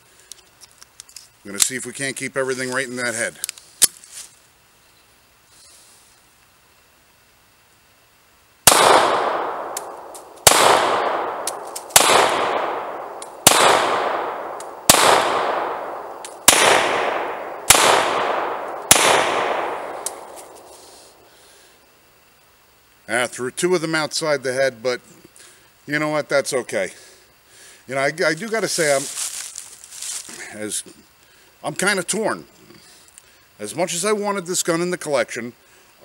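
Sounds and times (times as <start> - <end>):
pistol shots with echo: 8.6 - 20.7.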